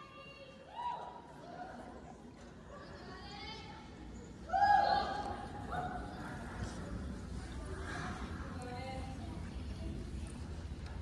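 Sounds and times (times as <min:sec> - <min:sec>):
crowd murmuring: 0:01.3 - 0:11.0.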